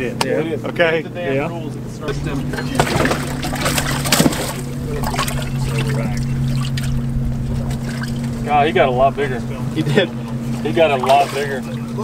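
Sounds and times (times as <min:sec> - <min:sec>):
steady low hum: 0:00.0 - 0:12.0
water splashing and sloshing: 0:02.2 - 0:12.0.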